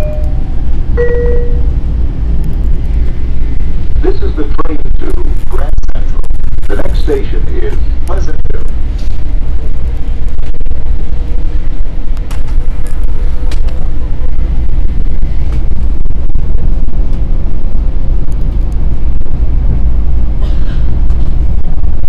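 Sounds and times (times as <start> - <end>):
faint steady hum: 0.0 - 22.0
train low rumble: 0.0 - 22.0.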